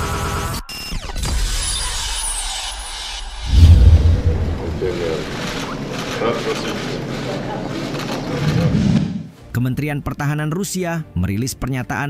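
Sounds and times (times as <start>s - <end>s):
low rumble: 3.4s - 5.6s
steady background noise: 3.5s - 8.7s.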